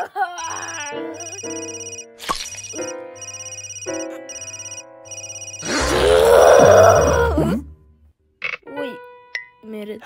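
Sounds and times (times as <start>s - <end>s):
cartoon telephone bell ringing: 0.4s - 5.9s
cartoon character vocal outburst: 5.6s - 7.7s.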